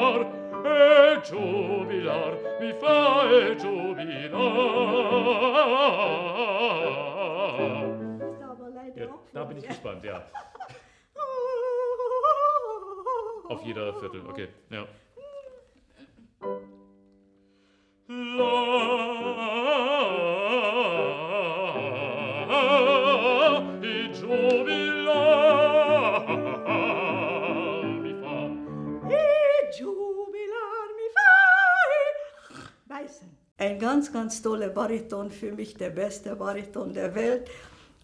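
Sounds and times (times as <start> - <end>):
person singing operatic notes: 0.0 - 8.2, 11.2 - 15.8, 18.1 - 33.3
person speaking: 9.0 - 10.4, 13.5 - 15.7.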